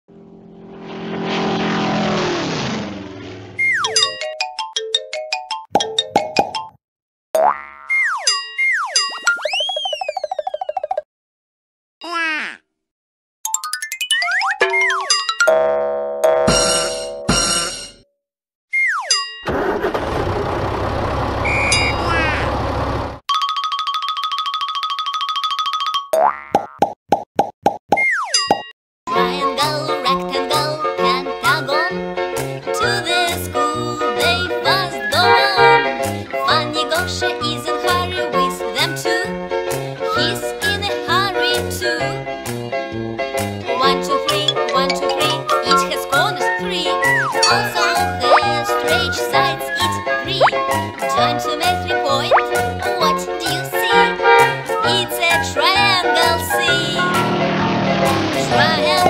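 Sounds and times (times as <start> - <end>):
cartoon upward swoop: 1.1 - 4.1, 7.9 - 11.0, 21.4 - 22.5, 34.9 - 36.0, 47.0 - 47.5
falling whistle glide: 3.5 - 3.9, 9.4 - 10.2, 21.4 - 22.1
cartoon boing springs: 7.4 - 11.0, 13.5 - 18.0, 21.5 - 22.5, 26.1 - 26.9
tone sliding down in pitch: 21.4 - 22.6
clicks and pops: 26.5 - 28.6
bright children's song: 29.1 - 32.0, 32.6 - 42.6, 43.4 - 57.4, 58.0 - 59.0.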